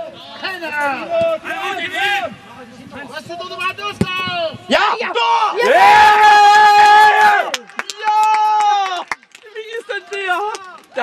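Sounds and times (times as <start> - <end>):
men cheering a goal: 4.7 - 9.1.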